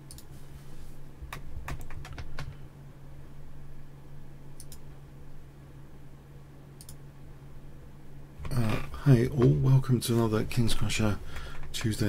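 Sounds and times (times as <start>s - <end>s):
steady low hum: 0.0s - 12.0s
keyboard keys clicking: 1.3s - 2.6s.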